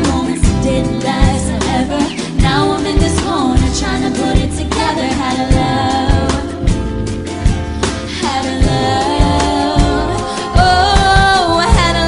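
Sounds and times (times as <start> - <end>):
woman singing: 0.0 - 6.9, 8.0 - 12.0
drums and bass: 0.0 - 12.0.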